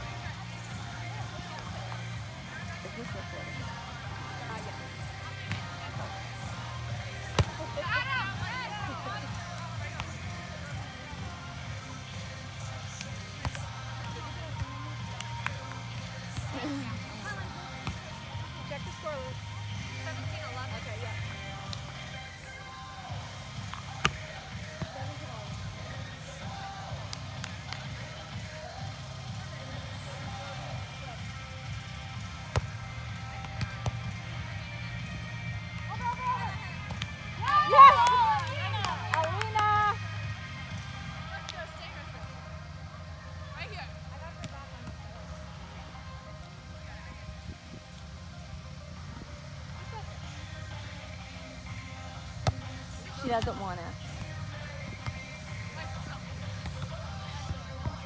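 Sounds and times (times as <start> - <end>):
faint voices: 0.0 - 58.0
volleyball hits: 23.6 - 24.9
crowd shouting and cheering: 32.9 - 41.2.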